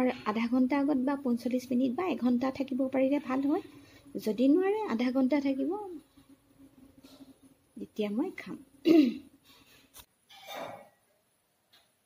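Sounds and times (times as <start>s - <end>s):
woman clearing throat: 8.8s - 9.3s, 10.3s - 10.9s.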